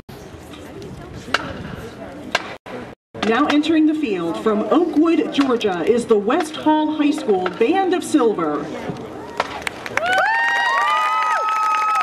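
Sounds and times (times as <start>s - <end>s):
crowd murmur outdoors: 0.1s - 10.0s.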